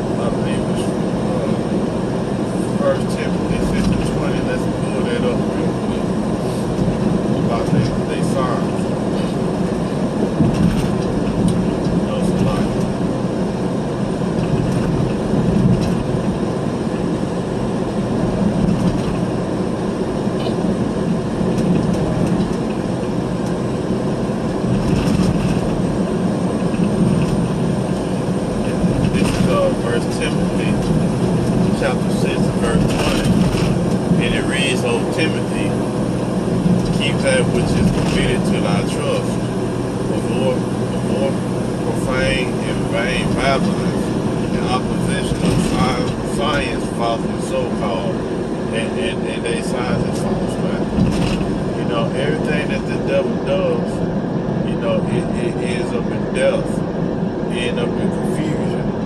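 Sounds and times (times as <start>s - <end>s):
car engine drone: 0.0s - 59.0s.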